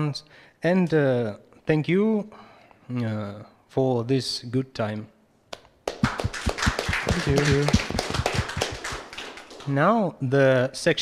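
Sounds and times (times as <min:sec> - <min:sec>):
small audience clapping: 0:05.8 - 0:09.9
voice: 0:06.0 - 0:08.9.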